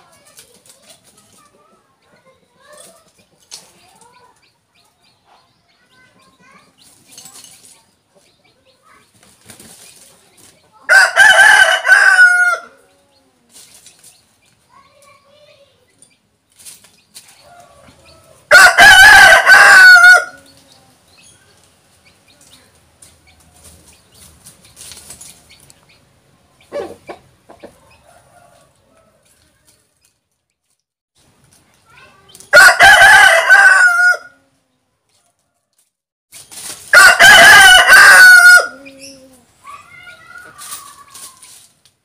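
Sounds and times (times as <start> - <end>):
rooster flapping wings: 9.2 - 10.3, 23.5 - 25.4
rooster crowing: 10.9 - 12.8, 17.5 - 20.4, 32.5 - 34.4, 36.9 - 38.9.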